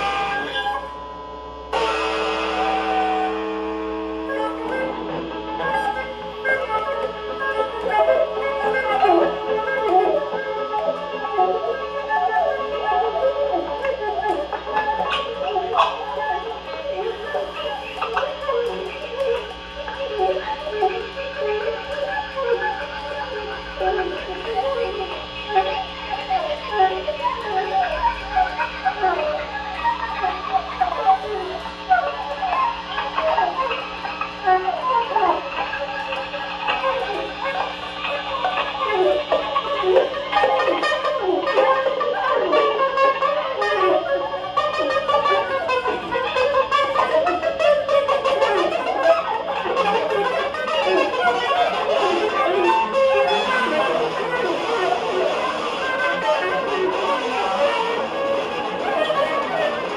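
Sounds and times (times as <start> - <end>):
electric guitar: 0.0 - 59.9
flute melody: 0.0 - 59.9.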